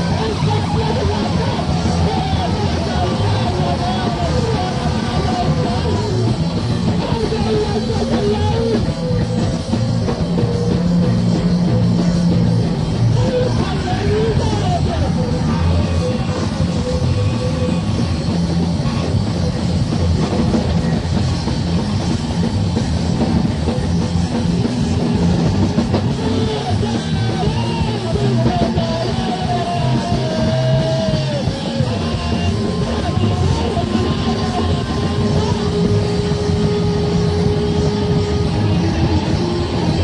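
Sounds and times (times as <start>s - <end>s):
drum kit: 0.0s - 40.0s
live band playing rock music: 0.0s - 40.0s.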